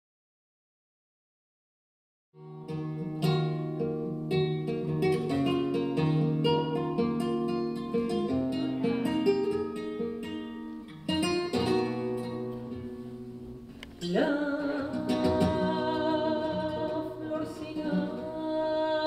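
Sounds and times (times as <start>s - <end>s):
flamenco guitar playing: 2.4s - 19.0s.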